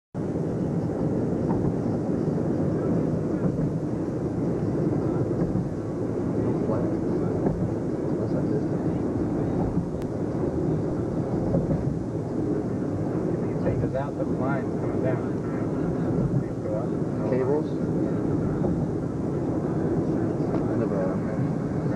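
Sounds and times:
car road and engine rumble: 0:00.2 - 0:21.9.

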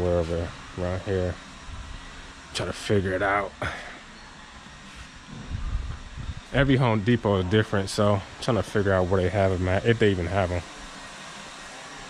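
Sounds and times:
store background hum: 0:00.0 - 0:12.0
low rumble: 0:05.3 - 0:06.8.

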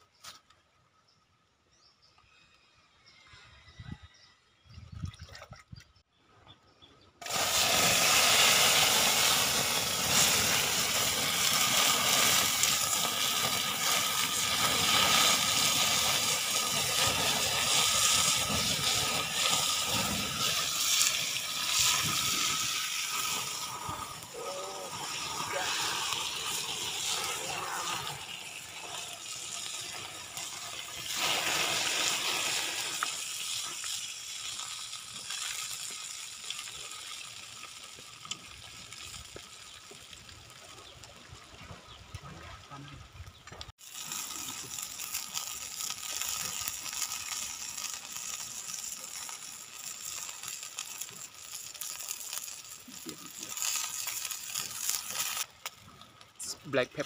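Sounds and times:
oil sizzling in a pan: 0:07.2 - 0:41.5, 0:43.8 - 0:55.8.

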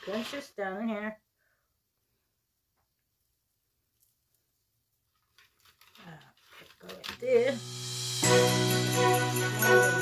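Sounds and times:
ribbon rustling and clicking: 0:04.0 - 0:07.3.

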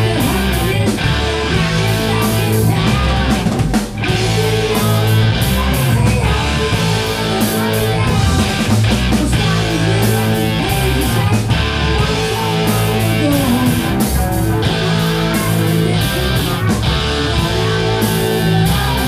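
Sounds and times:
live rock band playing: 0:00.0 - 0:19.0
man singing: 0:00.0 - 0:19.0.

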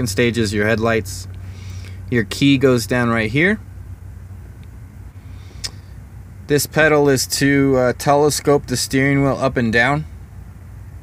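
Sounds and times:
diesel truck engine idling: 0:00.0 - 0:11.0
faint click: 0:05.6 - 0:05.8.

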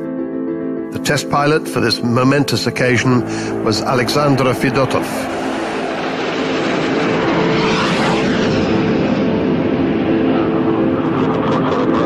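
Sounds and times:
jet fighter flying past: 0:03.4 - 0:12.0.

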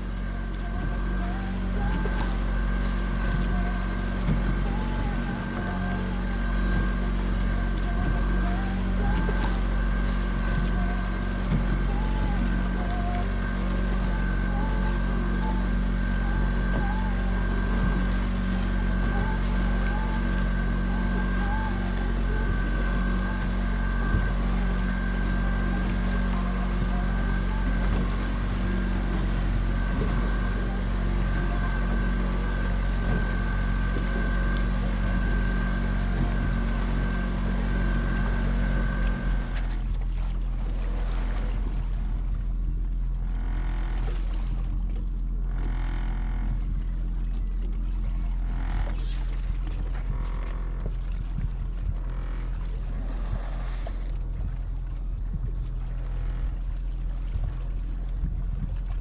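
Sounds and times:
water washing: 0:00.0 - 0:43.0
outboard motor running: 0:00.0 - 0:59.0.

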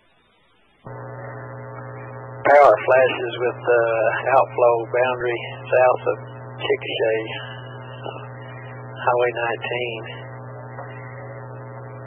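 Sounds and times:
buzzy electrical hum over radio: 0:00.0 - 0:12.0.

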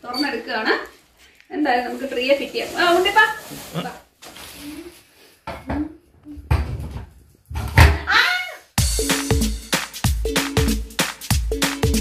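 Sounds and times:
electronic music with a beat: 0:08.8 - 0:12.0.

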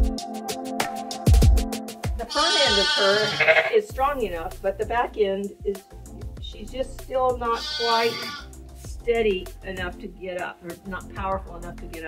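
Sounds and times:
sheep bleating: 0:02.3 - 0:03.8, 0:07.5 - 0:08.5.

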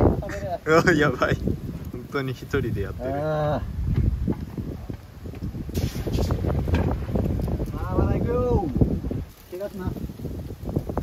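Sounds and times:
wind buffeting microphone: 0:00.0 - 0:11.0
short sharp hiss: 0:05.6 - 0:06.7.

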